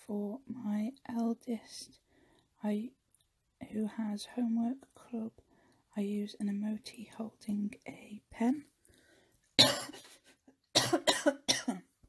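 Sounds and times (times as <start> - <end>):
woman coughing: 9.6 - 11.9.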